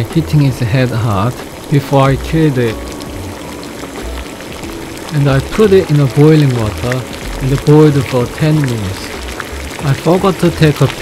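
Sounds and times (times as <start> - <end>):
soft background music: 0.0 - 11.0
watery hiss of heating pot: 0.0 - 11.0.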